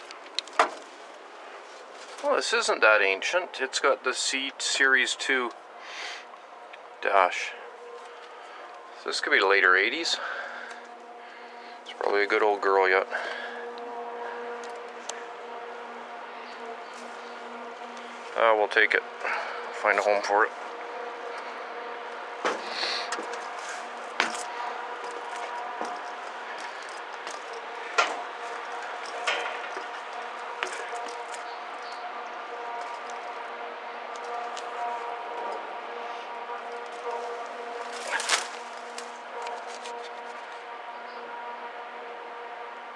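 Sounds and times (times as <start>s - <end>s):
machine hum with whine: 5.6s - 42.9s
sharp knocks: 22.4s - 23.4s.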